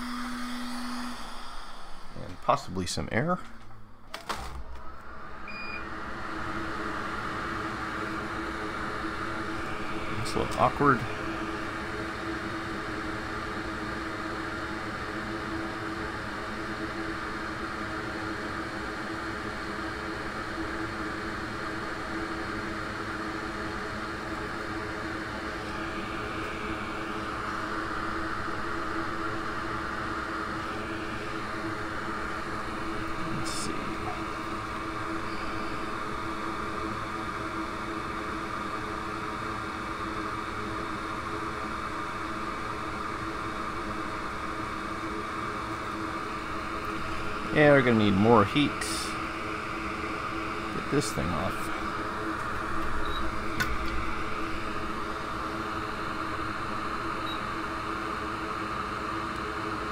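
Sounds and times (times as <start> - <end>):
hot air station blowing: 0.0 - 3.4, 4.8 - 59.9.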